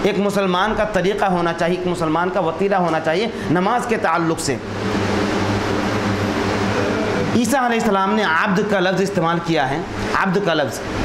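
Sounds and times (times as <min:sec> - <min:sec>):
steady mechanical noise: 0:00.0 - 0:11.0
low hum: 0:03.3 - 0:09.0.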